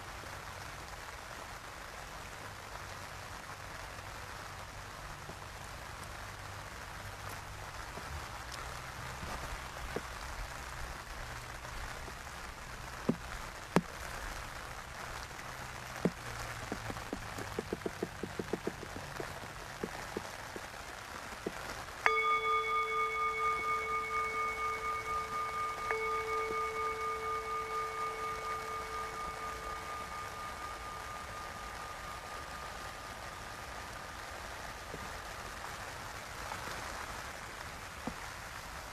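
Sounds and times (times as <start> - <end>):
outdoor hiss: 0.0 - 38.9
singing bowl ringing: 16.0 - 20.2, 22.0 - 35.3
sharp clicks and ticks: 16.0 - 20.7.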